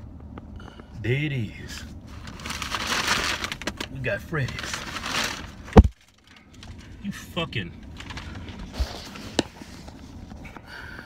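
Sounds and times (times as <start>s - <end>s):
paper bag rustling: 2.1s - 9.9s.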